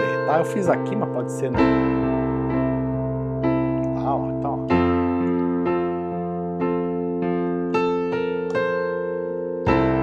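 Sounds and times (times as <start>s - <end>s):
piano chords on digital keyboard: 0.0s - 10.0s.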